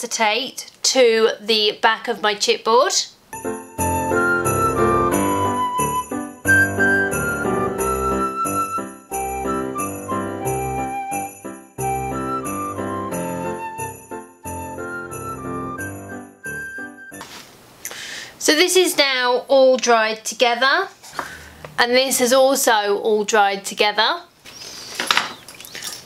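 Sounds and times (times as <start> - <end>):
jingle bells shaking: 3.4 - 16.8
christmas-style background music: 3.4 - 17.4.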